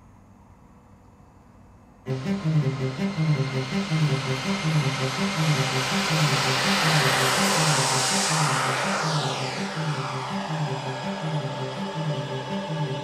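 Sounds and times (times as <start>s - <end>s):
model jet turbine whine: 2.1s - 13.0s
music with pulsing beat: 2.1s - 13.0s.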